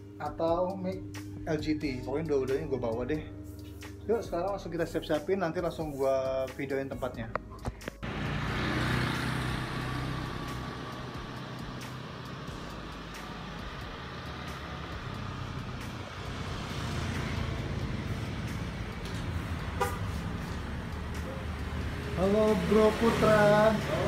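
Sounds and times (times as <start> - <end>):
vehicles passing: 7.4 - 24.0.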